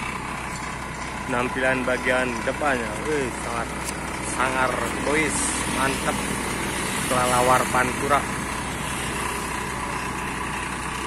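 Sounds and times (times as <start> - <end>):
diesel bus engine idling: 0.0 - 11.0.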